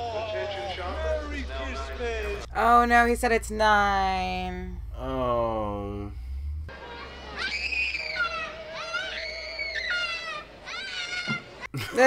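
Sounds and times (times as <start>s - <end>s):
child screaming: 7.0s - 11.5s.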